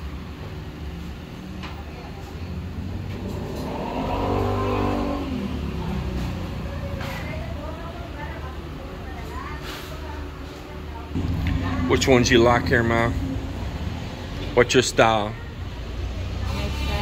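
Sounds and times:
vehicle engine revving: 3.1 - 6.4, 11.2 - 17.0
steady low hum: 11.2 - 16.2.

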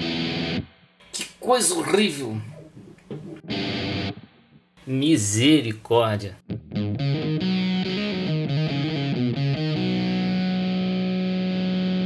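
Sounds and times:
fuzzed electric guitar: 0.0 - 1.3, 2.5 - 4.7, 6.5 - 12.0.

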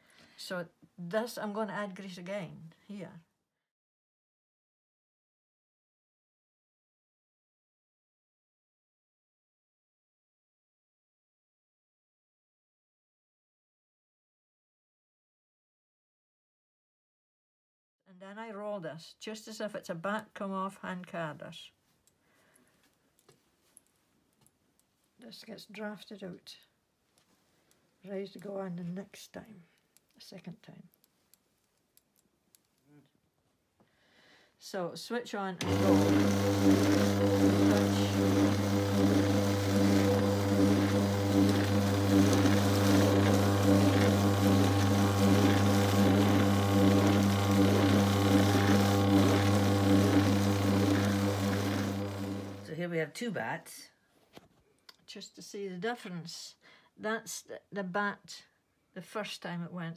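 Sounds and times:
motor humming: 35.6 - 52.7.

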